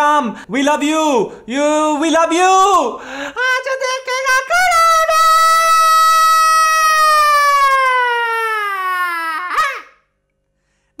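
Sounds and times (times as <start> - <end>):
long high-pitched yell: 3.4 - 10.1.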